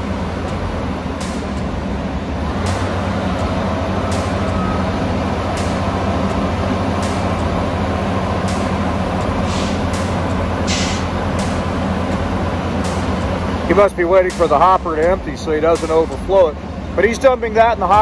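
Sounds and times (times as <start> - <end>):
diesel engine running: 0.0 - 18.0
short hiss: 9.4 - 9.8, 10.7 - 11.1.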